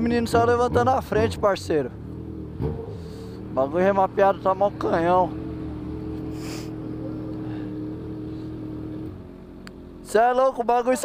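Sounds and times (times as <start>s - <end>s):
motorcycle engine idling: 0.0s - 10.3s.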